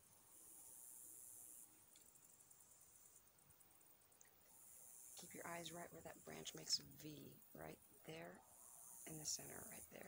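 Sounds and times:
faint high hiss: 0:00.0 - 0:10.0.

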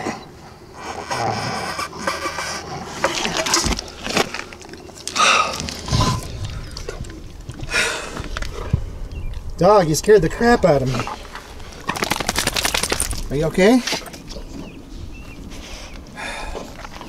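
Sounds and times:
rustling and scraping: 0:00.9 - 0:08.9.

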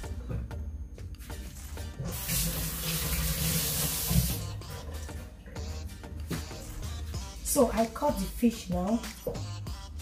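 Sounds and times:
water running into metal sink: 0:02.1 - 0:04.4.

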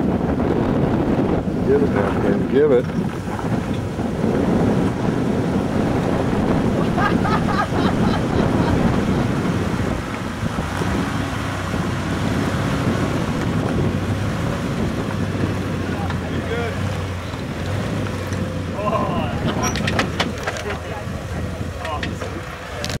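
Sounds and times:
engine running at low revs: 0:00.0 - 0:23.0
wind noise on microphone: 0:00.0 - 0:23.0
person laughing: 0:06.6 - 0:09.4.

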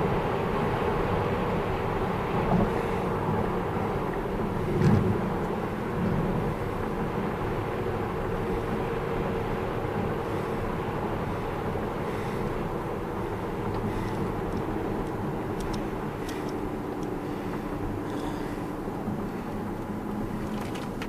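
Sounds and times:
tyre and road noise: 0:00.0 - 0:21.0.

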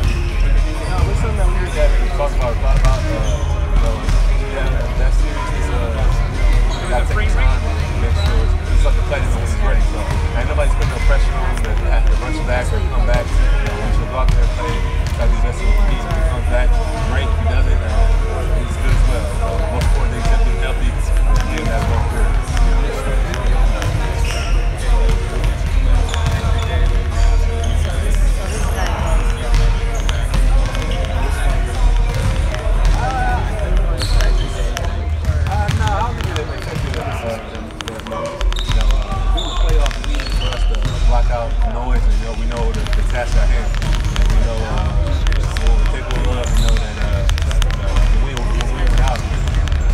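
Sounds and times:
background music: 0:00.0 - 0:49.9
basketballs bouncing on gym floor: 0:00.0 - 0:49.9
man talking: 0:00.0 - 0:49.9
man speaking: 0:00.8 - 0:49.4.

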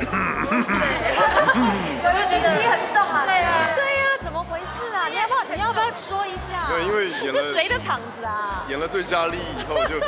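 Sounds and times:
background music with bass: 0:00.0 - 0:04.8, 0:05.5 - 0:10.0
people talking over one another: 0:00.4 - 0:10.0.

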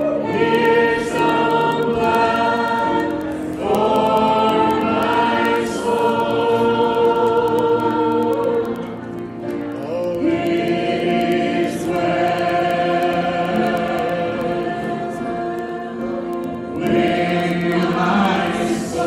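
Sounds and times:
group singing gospel song: 0:00.0 - 0:19.0.

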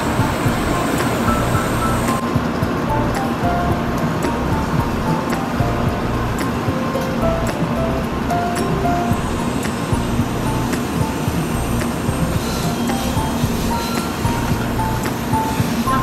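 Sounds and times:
light instrumental music: 0:00.0 - 0:16.0.

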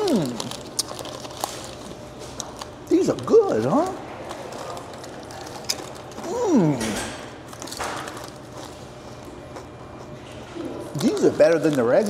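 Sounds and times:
crunching potato chips: 0:00.0 - 0:06.8, 0:07.4 - 0:12.0
person humming mmm: 0:06.2 - 0:07.0.

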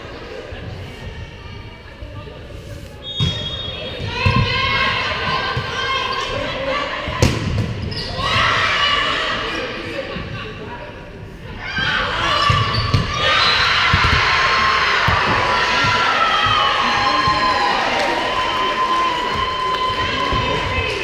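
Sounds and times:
crowd shouting and cheering: 0:11.5 - 0:21.0.

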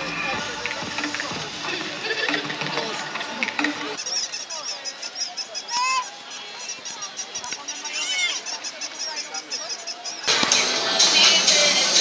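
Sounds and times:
squeaky honk-like calls: 0:00.0 - 0:10.3.

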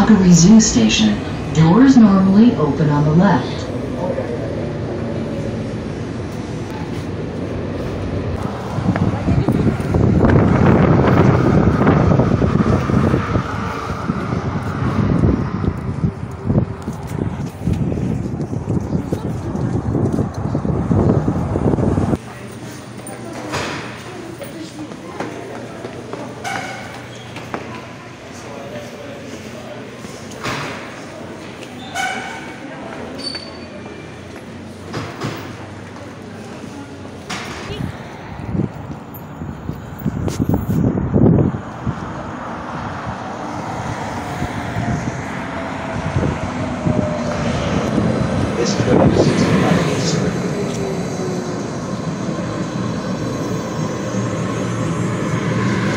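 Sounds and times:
faint voices: 0:00.0 - 0:55.9
wind buffeting microphone: 0:03.6 - 0:22.5, 0:37.6 - 0:55.9.

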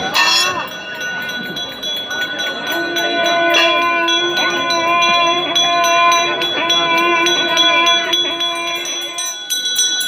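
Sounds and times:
temple bells ringing: 0:00.0 - 0:10.0.

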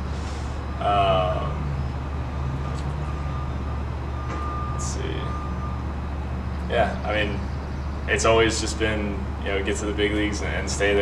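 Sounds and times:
short vocal sound: 0:00.8 - 0:01.6.

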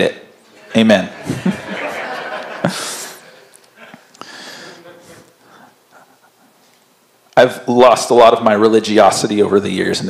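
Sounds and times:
soft breaths: 0:02.7 - 0:06.8.

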